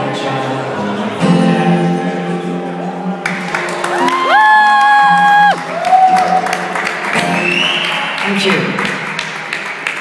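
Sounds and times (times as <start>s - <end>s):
acoustic guitar song: 0.0s - 4.2s
audience clapping and cheering: 3.1s - 10.0s
person whooping: 3.9s - 6.6s.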